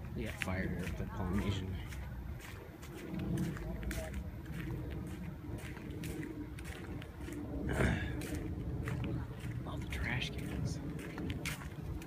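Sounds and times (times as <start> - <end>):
footsteps on brick paving: 0.0 - 12.0
low indistinct voices: 0.0 - 12.0.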